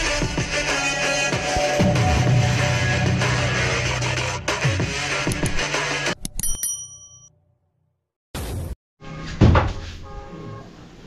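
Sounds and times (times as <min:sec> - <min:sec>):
bell ding: 0:06.4 - 0:07.3.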